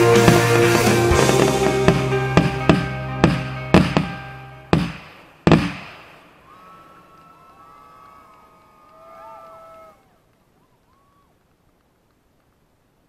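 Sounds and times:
music chord: 0.0s - 4.8s
firework shells bursting: 0.1s - 6.4s.

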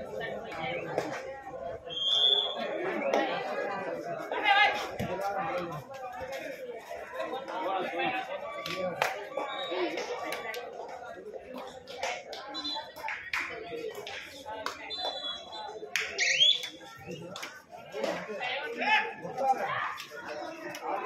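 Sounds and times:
sharp claps and slaps: 3.0s - 3.5s, 8.6s - 18.3s, 19.3s - 21.0s
players calling out: 14.8s - 17.3s.

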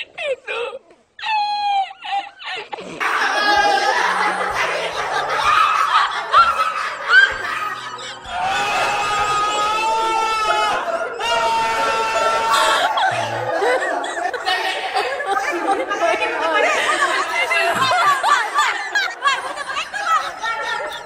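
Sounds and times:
people laughing: 0.0s - 21.0s
people calling out: 3.0s - 21.0s.

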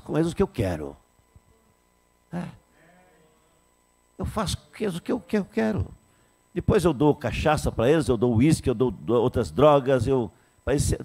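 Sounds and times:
man speaking into a microphone: 0.0s - 1.0s, 2.3s - 3.1s, 4.2s - 11.0s.

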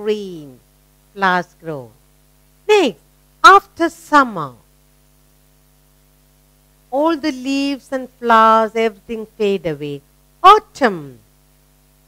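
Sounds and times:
woman speaking: 0.0s - 0.6s, 1.2s - 2.0s, 2.7s - 4.6s, 6.9s - 11.2s
electrical mains hum: 0.0s - 12.0s.

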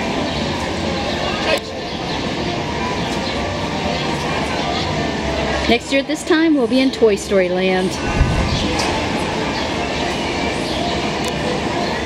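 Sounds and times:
distant crowd chatter: 0.0s - 12.0s
rushing rumble: 7.8s - 10.0s.

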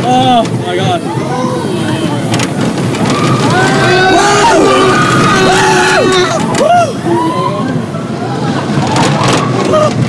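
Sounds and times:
roller coaster train rumbling: 0.0s - 10.0s
riders shouting and screaming: 2.9s - 10.0s.

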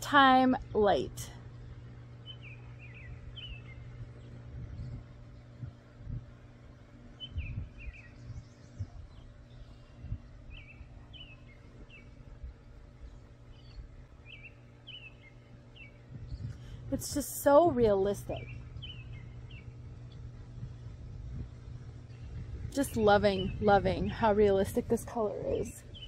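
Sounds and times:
birds chirping: 1.6s - 26.0s
wind gusting on microphone: 2.9s - 14.4s, 15.8s - 26.0s.

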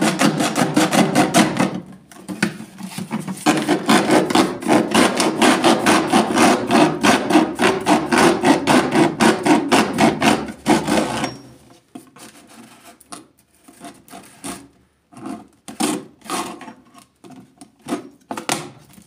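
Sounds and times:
hacksaw sawing through plastic: 0.0s - 1.9s, 2.9s - 11.5s, 13.6s - 18.8s.

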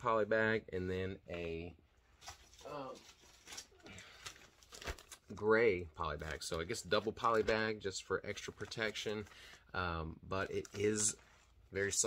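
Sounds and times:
plastic mailer bag crinkling: 2.2s - 9.6s, 10.4s - 11.3s.

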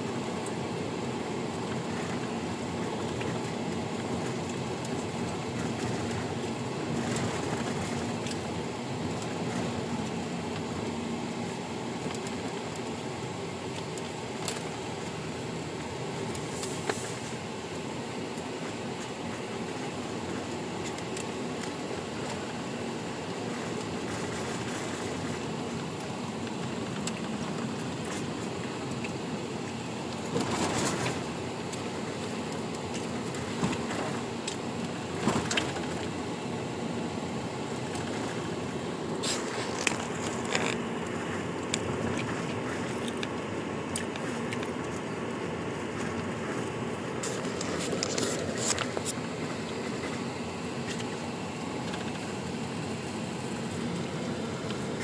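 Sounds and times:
car road and engine noise: 0.0s - 55.0s.

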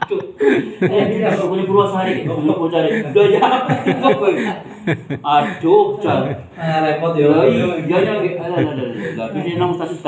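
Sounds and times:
man talking and chuckling: 0.0s - 6.8s, 7.4s - 10.0s.

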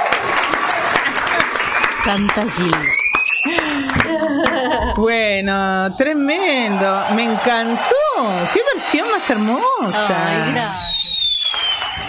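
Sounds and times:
women's voices talking: 2.0s - 2.9s, 4.5s - 10.9s.

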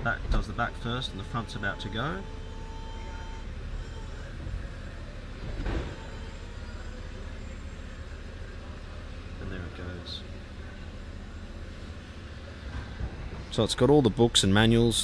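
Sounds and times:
short steady whine: 0.0s - 12.9s
convertible roof mechanism humming: 0.0s - 15.0s
mechanism clunk: 5.4s - 6.9s.

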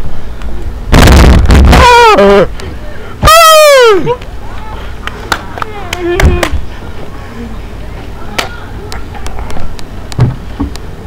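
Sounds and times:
steady low rumble: 0.0s - 3.2s.

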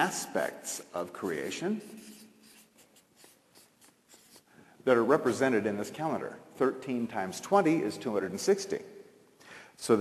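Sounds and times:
man speaking: 0.0s - 1.9s, 4.8s - 8.9s, 9.8s - 10.0s
marker pen scratching on paper: 1.1s - 4.6s.

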